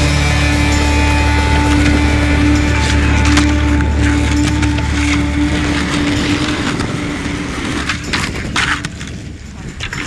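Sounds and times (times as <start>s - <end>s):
skateboard wheels rolling on asphalt: 0.0s - 10.0s
skateboard clacks: 1.1s - 10.0s.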